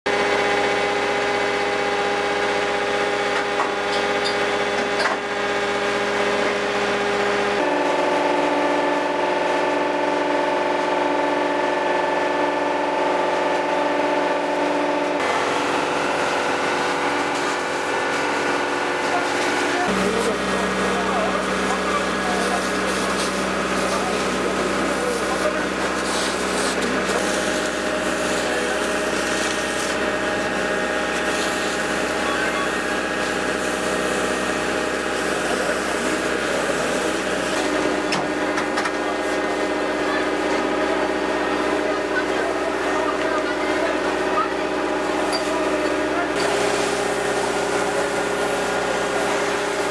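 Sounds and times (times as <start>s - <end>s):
fire engine motor running: 0.1s - 49.9s.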